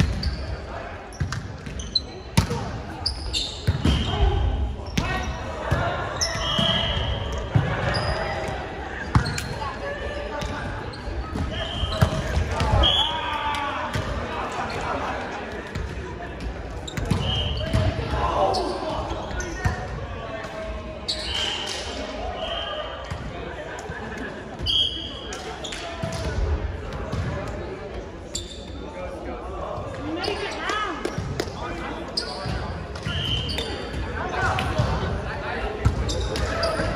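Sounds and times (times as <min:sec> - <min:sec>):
sneakers squeaking on gym floor: 0:00.0 - 0:13.2, 0:16.8 - 0:19.8, 0:28.3 - 0:28.8, 0:32.1 - 0:34.9, 0:35.8 - 0:36.9
players' voices echoing: 0:00.0 - 0:36.9.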